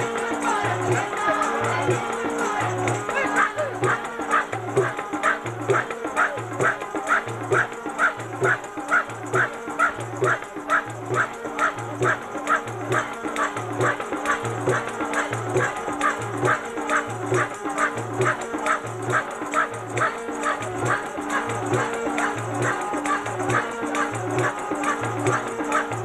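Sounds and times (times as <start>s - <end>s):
drum steady beat: 0.0s - 26.0s
held drone: 0.0s - 26.0s.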